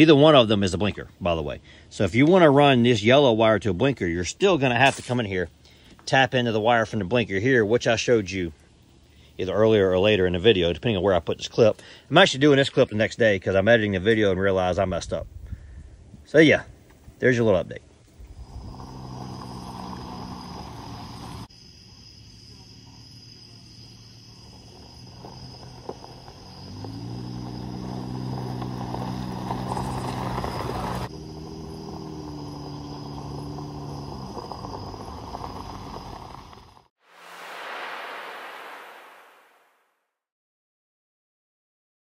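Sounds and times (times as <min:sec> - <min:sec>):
car engine idling: 0:18.4 - 0:21.5, 0:24.5 - 0:36.9
short whoosh: 0:37.0 - 0:39.9
steady high-pitched tone: 0:37.1 - 0:39.9.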